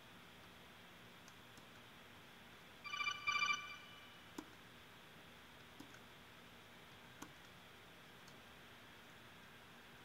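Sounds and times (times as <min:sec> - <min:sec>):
warbling electronic alert tone: 0:02.9 - 0:04.2.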